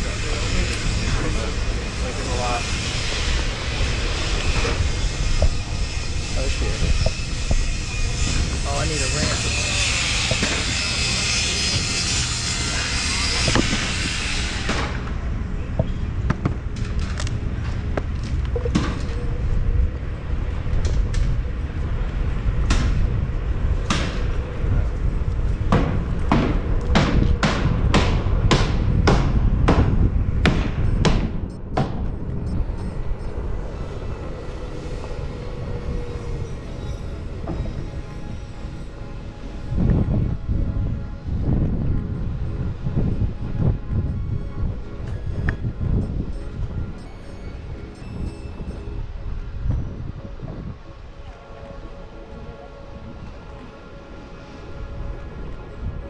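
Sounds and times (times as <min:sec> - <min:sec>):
electric board rolling on pavement: 0:00.0 - 0:56.0
wind rumble on microphone: 0:00.0 - 0:56.0.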